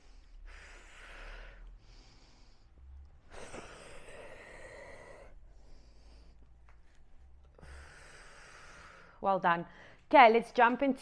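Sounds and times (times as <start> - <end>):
woman breathing: 0.0 - 10.1.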